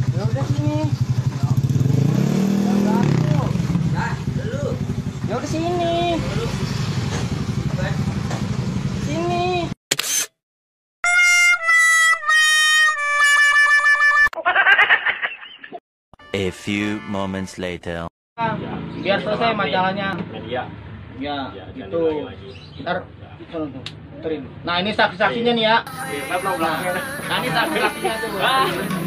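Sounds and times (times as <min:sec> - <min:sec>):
scooter engine revving: 0:00.0 - 0:09.2
held music notes: 0:16.2 - 0:18.1
voices: 0:16.3 - 0:19.8, 0:25.9 - 0:29.0.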